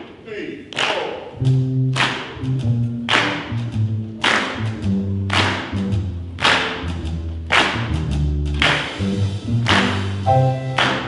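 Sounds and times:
jazz big band playing: 1.4 - 11.0
low bass and piano notes: 2.5 - 11.0.

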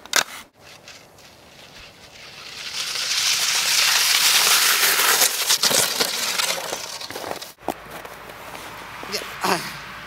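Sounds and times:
faint outdoor hiss: 0.0 - 9.8.

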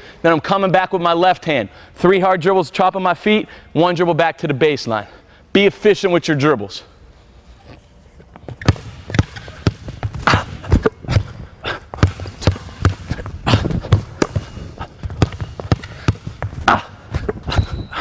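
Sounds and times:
sneaker squeak: 7.5 - 10.0, 17.2 - 18.0
basketball bouncing on hardwood floor: 8.4 - 17.7.

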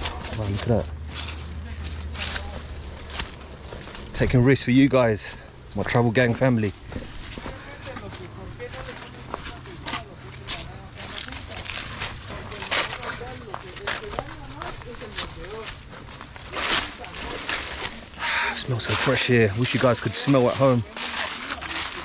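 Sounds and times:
indistinct voices talking: 0.0 - 22.0.

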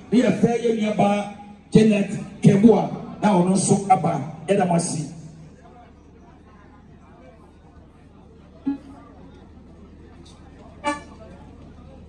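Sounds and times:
faint background voices: 5.2 - 12.0
car horn toot: 10.8 - 11.3.

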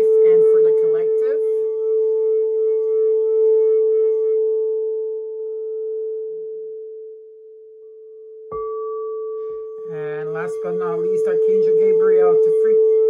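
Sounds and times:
crystal singing bowl ringing: 4.4 - 13.0.

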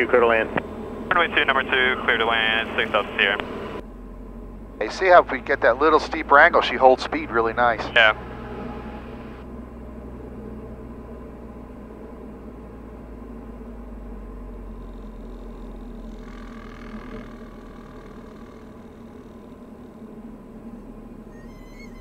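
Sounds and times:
aircraft engine and propeller droning: 0.0 - 22.0.

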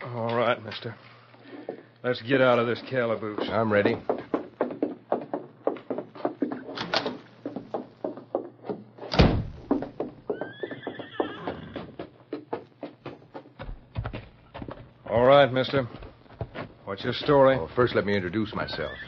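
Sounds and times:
quick steady knocks: 2.9 - 9.0
heavy thud: 9.1 - 10.0
horse whinnying: 10.3 - 12.0, 18.8 - 19.0.

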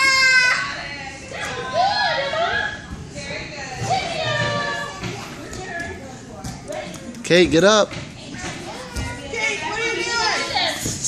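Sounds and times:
children chattering: 0.0 - 7.4, 8.0 - 11.0.

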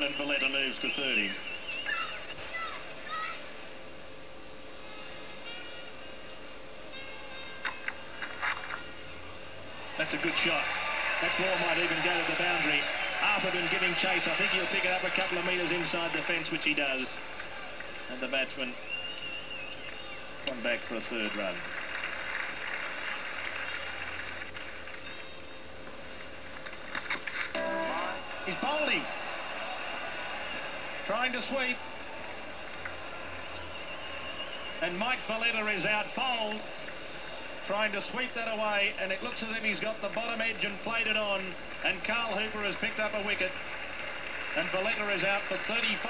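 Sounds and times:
steady hum: 0.0 - 8.2
crowd noise: 8.2 - 24.9, 26.7 - 46.0.

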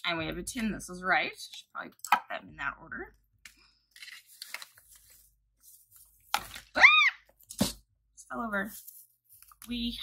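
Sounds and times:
rustling and handling of packaging: 3.9 - 7.7, 8.4 - 10.0.

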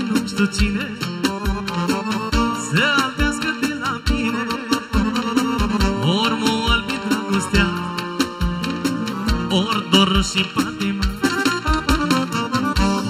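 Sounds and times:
folk band playing: 0.0 - 13.0
sliding melody line: 0.0 - 13.0
steady drum beat: 0.0 - 13.0.

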